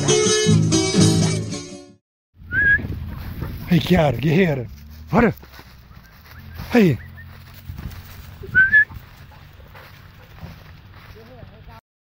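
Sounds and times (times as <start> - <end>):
loud rising whistle: 2.5 - 2.9.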